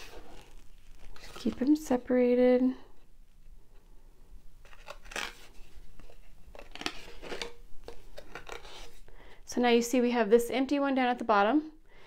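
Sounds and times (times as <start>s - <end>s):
cardboard handling: 4.6s - 9.0s.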